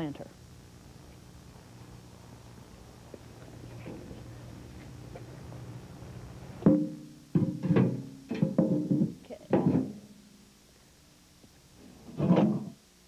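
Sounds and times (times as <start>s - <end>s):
hollow metal knocks on stone: 6.6s - 10.0s.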